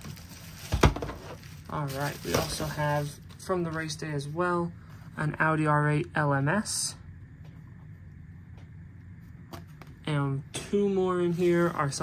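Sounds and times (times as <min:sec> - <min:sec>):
low hum: 0:01.3 - 0:12.0.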